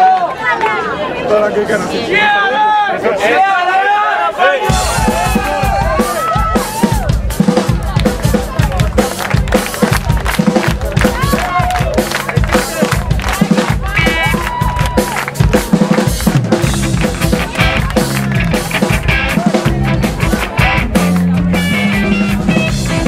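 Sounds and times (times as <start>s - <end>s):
rock band playing live: 4.6s - 23.0s
bass drum and snare: 4.7s - 23.0s.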